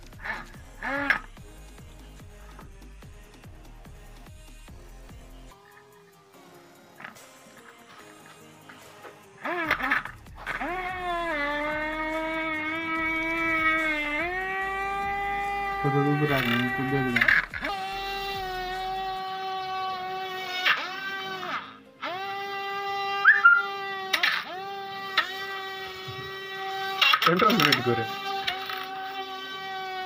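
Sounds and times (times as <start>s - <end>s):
toy motor whirring: 0.0s - 1.8s, 7.0s - 30.0s
quiet background music: 0.0s - 30.0s.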